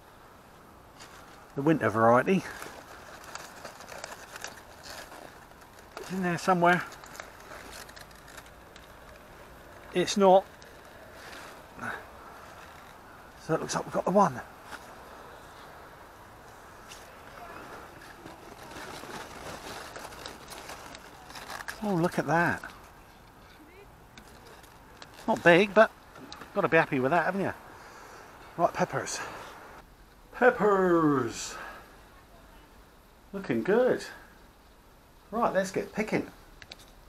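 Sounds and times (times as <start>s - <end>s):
wet leaves rustling and crackling: 0.0s - 29.8s.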